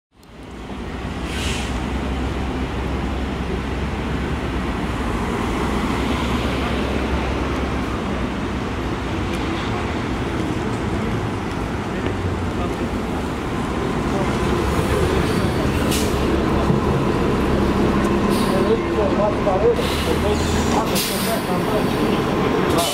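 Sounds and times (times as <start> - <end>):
street traffic: 0.1 - 22.9
bus engine rumble: 0.2 - 22.9.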